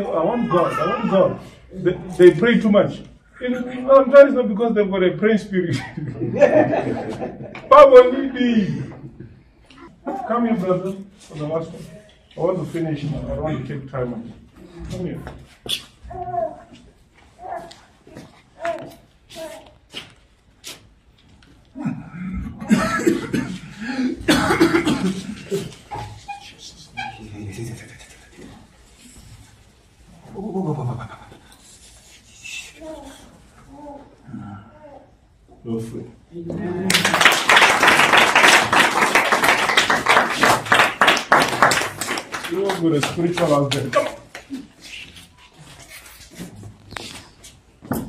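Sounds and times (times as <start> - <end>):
people clapping hands: 36.8 - 44.7.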